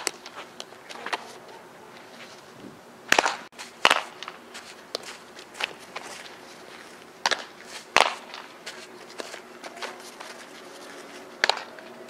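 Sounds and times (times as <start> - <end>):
bat hitting softball: 3.1 - 6.0, 7.2 - 9.3, 11.4 - 11.9
ball smacking into leather gloves: 7.2 - 8.5.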